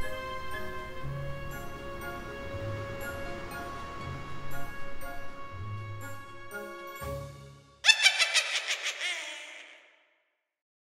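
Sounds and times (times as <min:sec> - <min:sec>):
high-pitched cackling laugh: 0:07.9 - 0:09.9.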